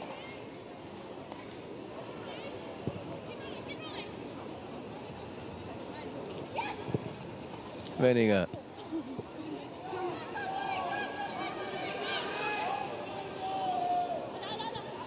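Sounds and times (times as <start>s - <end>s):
crowd murmur: 0.0s - 15.0s.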